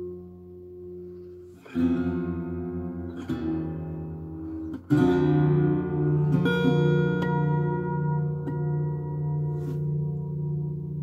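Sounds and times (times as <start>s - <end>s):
acoustic guitar chord ringing: 0.0s - 11.0s
guitar single plucks: 0.0s - 11.0s.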